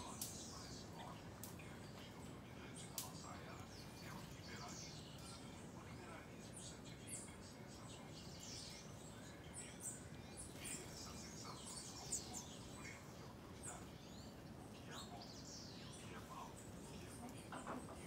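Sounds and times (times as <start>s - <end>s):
faint background hiss: 0.0s - 18.0s
small songbirds chirping: 0.0s - 18.0s.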